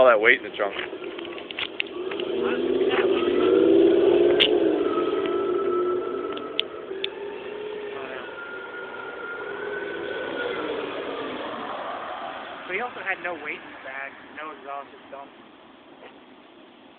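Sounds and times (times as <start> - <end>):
car engine revving: 0.0 - 15.1
thin high whine: 1.9 - 15.0.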